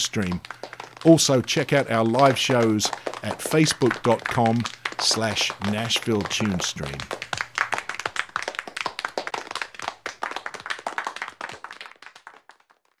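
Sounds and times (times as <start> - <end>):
audience applause: 0.0 - 13.0.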